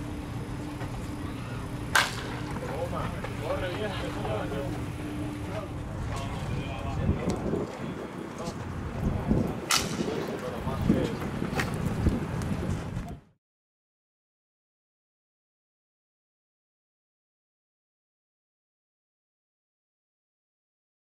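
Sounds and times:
faint voices calling out: 0:00.5 - 0:08.6
baseball cracks: 0:01.9 - 0:02.6, 0:09.6 - 0:10.2.

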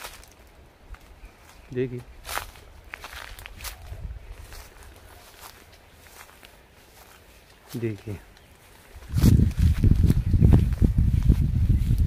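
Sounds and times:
footsteps on outdoor ground: 0:00.0 - 0:12.0.

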